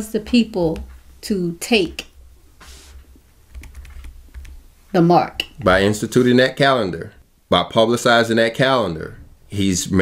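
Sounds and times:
steady low hum: 0.0 - 9.6
short hiss: 2.6 - 3.1
computer clicking: 3.5 - 4.6.

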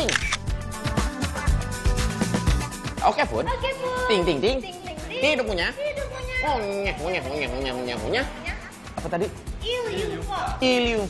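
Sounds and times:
camera shutter sound effect: 0.0 - 0.5
upbeat background music: 0.0 - 11.0.

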